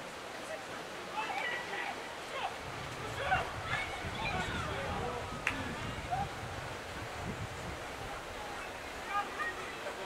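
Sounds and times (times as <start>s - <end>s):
wind buffeting microphone: 2.5s - 9.7s.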